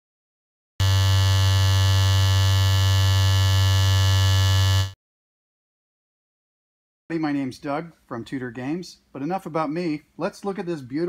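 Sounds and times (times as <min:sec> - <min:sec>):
vibrating metal field buzzing: 0:00.8 - 0:05.0.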